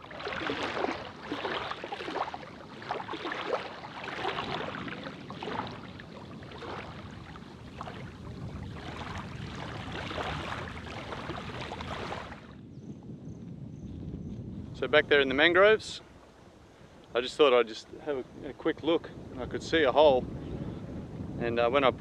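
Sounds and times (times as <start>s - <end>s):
seawater lapping at shoreline: 0.0s - 12.6s.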